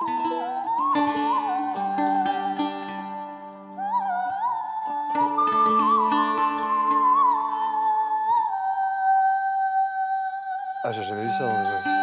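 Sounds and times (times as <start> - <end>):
woman singing high melody: 0.0 - 3.0, 3.7 - 12.0.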